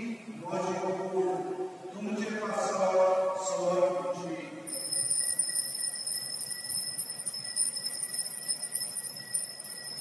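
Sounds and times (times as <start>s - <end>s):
altar bells jingling: 4.7s - 10.0s.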